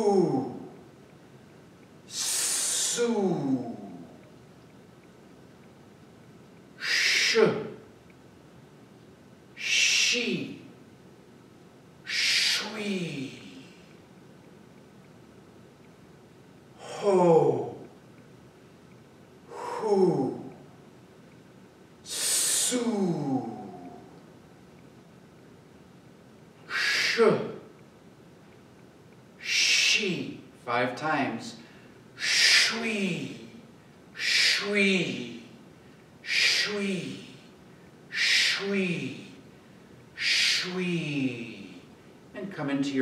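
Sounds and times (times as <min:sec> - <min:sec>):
man exhaling breathy hiss: 0:02.1 - 0:03.1, 0:06.8 - 0:07.5, 0:12.1 - 0:13.7, 0:22.1 - 0:23.0, 0:26.7 - 0:27.3, 0:29.4 - 0:30.0, 0:32.2 - 0:33.0, 0:34.2 - 0:34.8, 0:36.2 - 0:37.3, 0:38.1 - 0:38.8.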